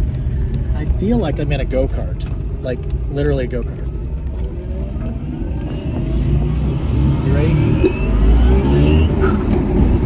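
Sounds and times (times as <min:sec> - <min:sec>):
road and wind rumble: 0:00.0 - 0:10.0.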